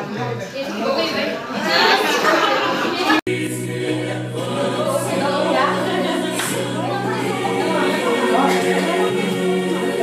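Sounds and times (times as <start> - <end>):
choir singing: 1.8 - 10.0.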